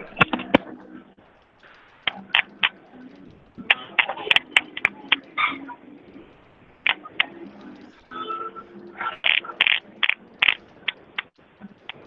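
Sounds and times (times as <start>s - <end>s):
sharp clicks and knocks: 0.0s - 8.0s, 8.8s - 12.0s.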